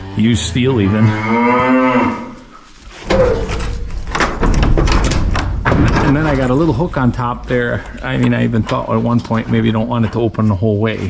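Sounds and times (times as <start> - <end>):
wooden knocks and clatter: 2.9 - 10.0.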